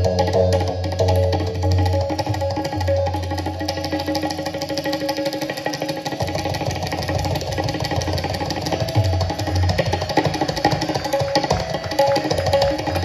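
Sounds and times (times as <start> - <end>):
tabla rapid strokes: 0.0 - 13.0.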